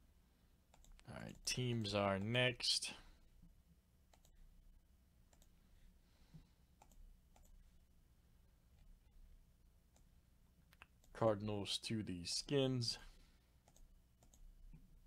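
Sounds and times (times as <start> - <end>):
low background hum: 0.0 - 15.0
computer mouse clicks: 0.7 - 1.5, 4.1 - 4.4, 5.3 - 5.6, 6.8 - 7.6, 13.6 - 14.5.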